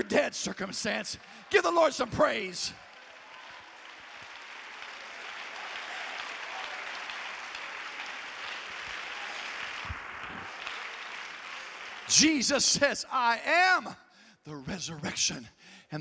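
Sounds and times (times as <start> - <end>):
congregation applauding: 0.0 - 12.9.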